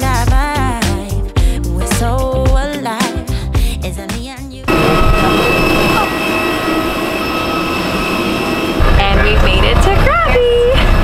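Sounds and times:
music: 0.0s - 5.8s, 8.9s - 11.0s
high engine whine: 4.7s - 11.0s
jet airliner cabin roar: 4.7s - 11.0s
deep vehicle rumble: 8.8s - 11.0s
voices: 8.8s - 11.0s.

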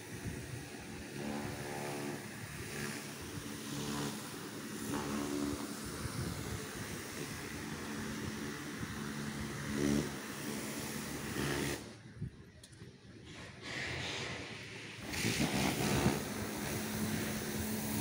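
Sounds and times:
vehicle engine running: 0.0s - 12.3s
outdoor background noise: 0.0s - 18.0s.

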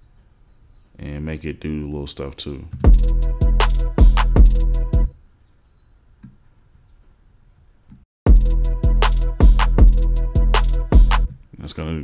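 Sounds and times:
hip-hop beat: 2.8s - 5.1s, 8.3s - 11.3s.

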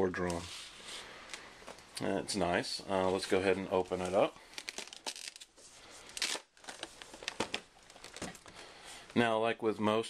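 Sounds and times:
cardboard packaging rustling: 2.9s - 8.6s.

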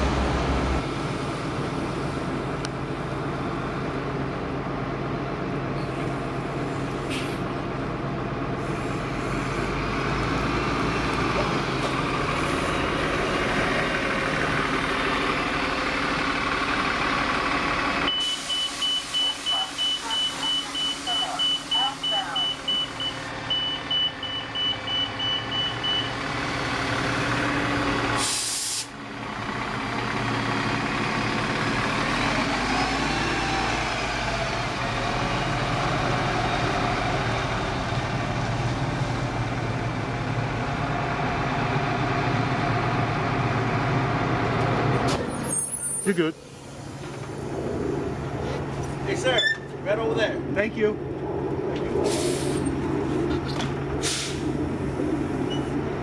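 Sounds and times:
bus engine running: 0.0s - 56.0s
air hiss: 28.2s - 29.0s, 54.0s - 54.4s.

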